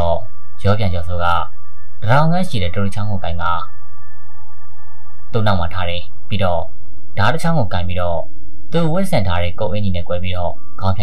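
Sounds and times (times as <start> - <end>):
low drone with high tones: 0.0 - 11.0
person speaking: 5.4 - 11.0.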